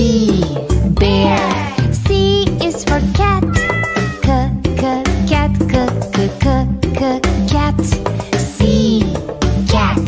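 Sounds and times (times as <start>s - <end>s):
upbeat children's song music: 0.0s - 10.0s
cat meowing: 3.4s - 4.3s.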